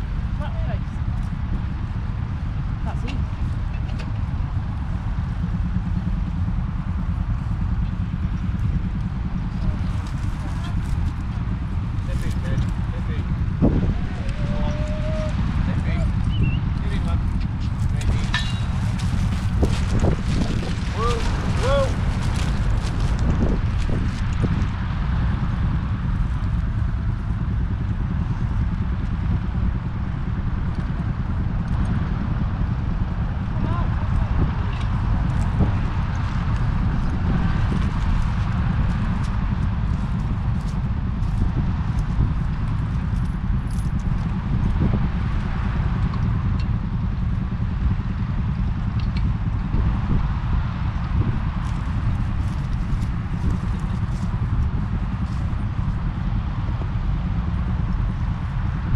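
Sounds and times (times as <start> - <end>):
wind rumble on microphone: 0.0 - 58.9.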